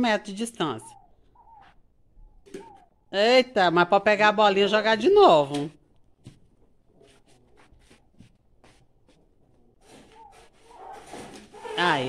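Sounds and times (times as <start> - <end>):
flip-flop footsteps on concrete: 6.2 - 11.6.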